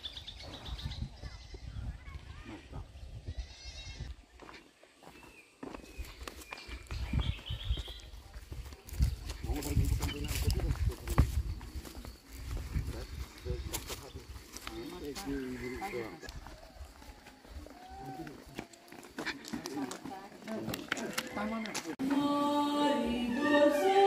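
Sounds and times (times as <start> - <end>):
footsteps crunching on gravel: 4.0 - 22.1
people talking: 8.2 - 12.1, 19.5 - 24.0.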